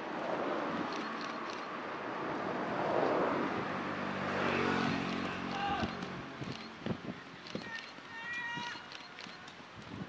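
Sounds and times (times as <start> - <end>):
person shouting encouragement: 5.5 - 6.0.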